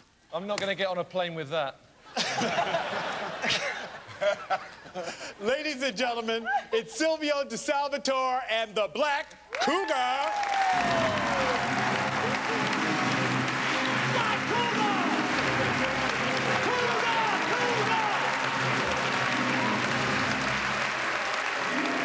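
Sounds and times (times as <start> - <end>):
audience applauding: 9.5 - 22.0
band music: 10.8 - 22.0
scattered shouts: 16.3 - 19.8.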